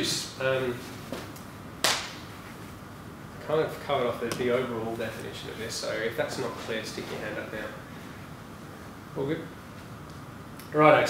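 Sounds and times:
sharp crack: 1.8 - 2.2.

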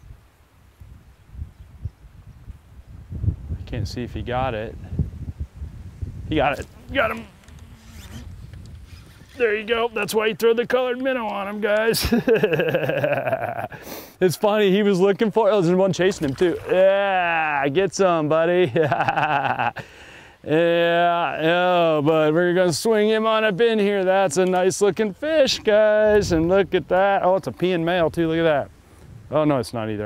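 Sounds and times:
wind rumble on microphone: 0.0 - 10.4, 25.4 - 30.0
man laughing: 6.5 - 7.3, 11.5 - 14.6, 18.5 - 21.0.

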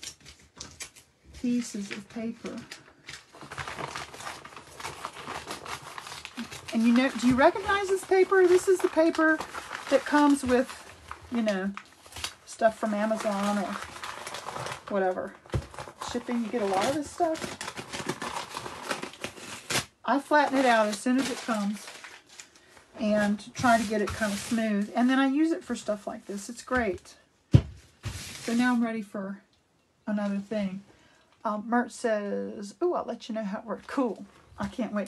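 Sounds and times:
packing paper rustling and crinkling: 0.0 - 25.0, 26.7 - 28.8.

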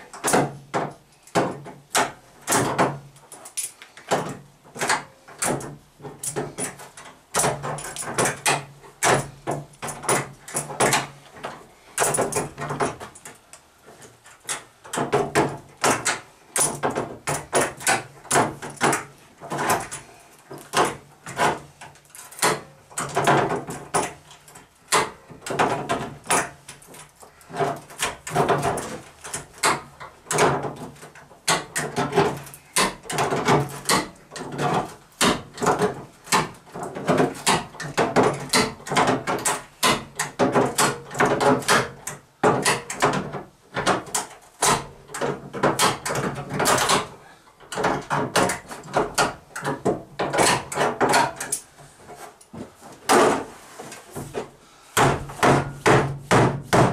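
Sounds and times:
sheet-metal panels knocking and rattling: 0.1 - 3.2, 4.1 - 13.3, 14.5 - 51.8, 53.0 - 56.9.

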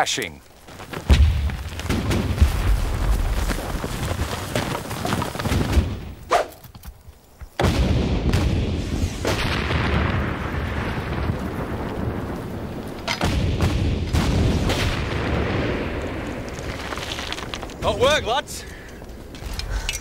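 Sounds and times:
cannons firing: 1.1 - 3.2, 7.6 - 16.7.

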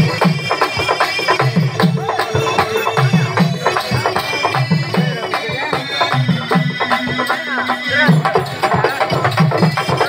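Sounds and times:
harmonium drone: 0.0 - 8.6
percussion beat: 0.0 - 10.0
high wavering melody: 1.6 - 7.7.

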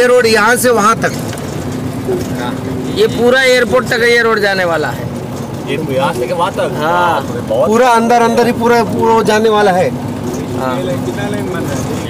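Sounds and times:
road vehicle hum: 0.0 - 12.0.

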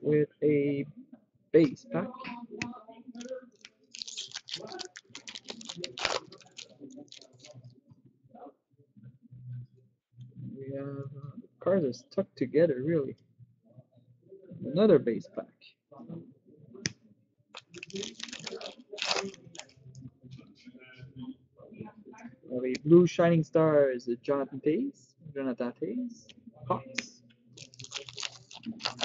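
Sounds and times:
cards being handled: 3.2 - 7.6, 17.6 - 19.7, 27.6 - 29.0
foil wrapper crinkling: 3.2 - 7.6, 17.6 - 19.7, 27.6 - 29.0.

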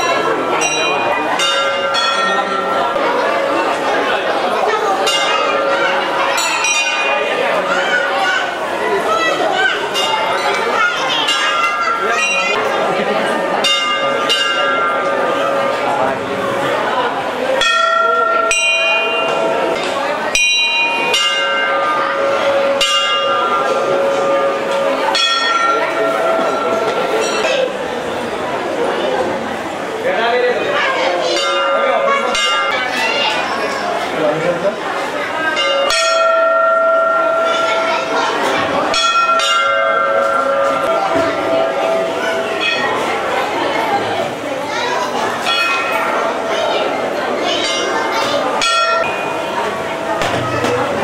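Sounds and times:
crowd chatter: 0.0 - 51.0
temple bells ringing: 0.0 - 51.0.

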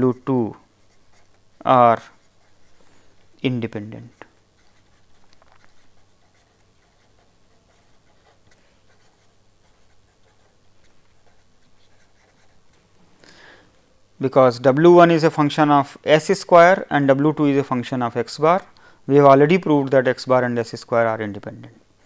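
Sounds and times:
pen scratching on paper: 0.8 - 1.4, 2.0 - 2.8, 3.8 - 12.8.

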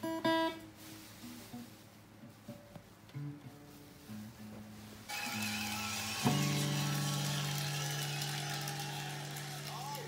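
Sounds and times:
acoustic guitar chord strummed: 0.0 - 0.6, 3.2 - 10.0.

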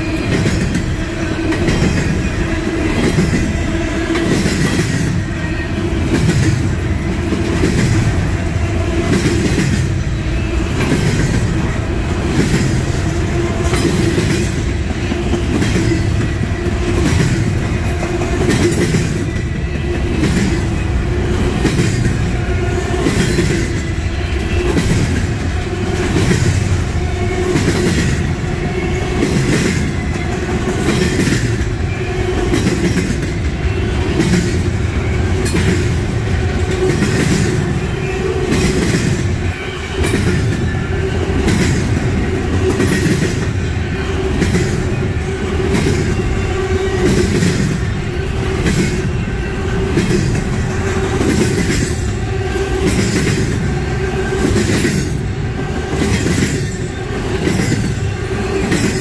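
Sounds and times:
rhythmic clickety-clack of wheels: 0.0 - 59.0
train wheels rumbling on rails: 0.0 - 59.0.

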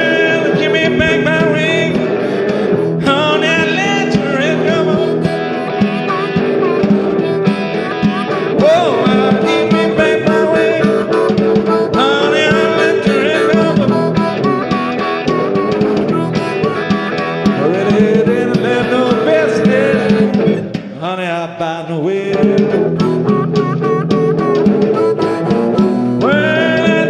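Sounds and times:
blues harmonica bending notes: 0.0 - 21.0, 22.3 - 27.0
guitar: 0.0 - 27.0.

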